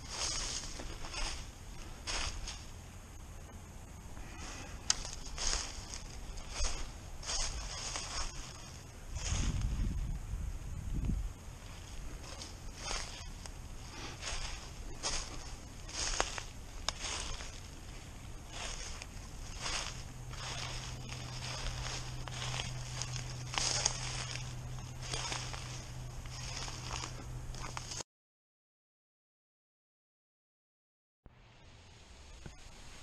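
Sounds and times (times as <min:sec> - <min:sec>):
footsteps crunching dry leaves: 0:00.0 - 0:02.8, 0:04.2 - 0:10.4, 0:11.1 - 0:28.0
steady low hum: 0:00.0 - 0:28.0.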